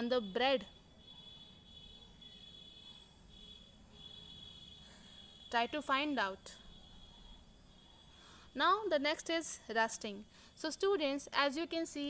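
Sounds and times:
faint high-pitched tone: 0.0 - 11.2.

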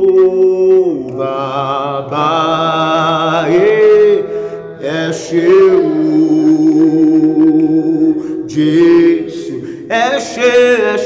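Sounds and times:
man singing slowly: 0.0 - 11.0.

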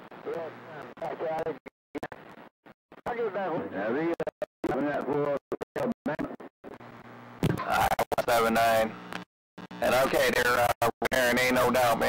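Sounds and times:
radio static hiss: 0.0 - 12.0
voice over cb radio: 9.8 - 12.0.

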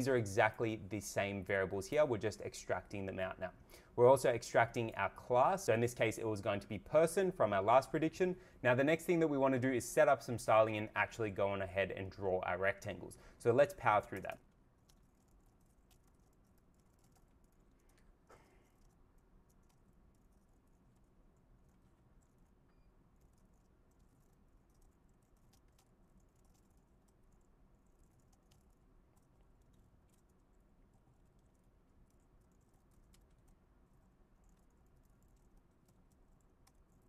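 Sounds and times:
keyboard typing: 13.0 - 37.0.

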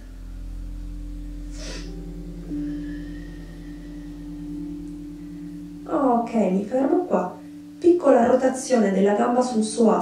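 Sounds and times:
soft music with sustained notes: 0.0 - 10.0
breathy hiss: 1.3 - 5.8.

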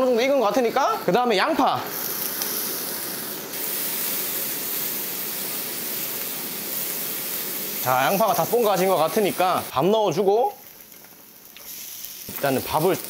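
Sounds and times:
onions sizzling in hot oil: 0.0 - 13.0.

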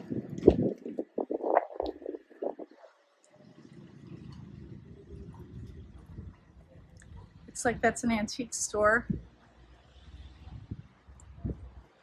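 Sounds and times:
low buffeting bumps: 0.0 - 2.8, 3.5 - 9.4
low rumble of traffic: 0.0 - 12.0.

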